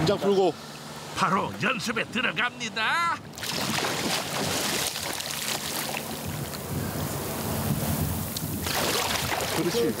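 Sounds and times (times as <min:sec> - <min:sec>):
water splashing and churning: 0:03.2 - 0:06.8, 0:08.4 - 0:10.0.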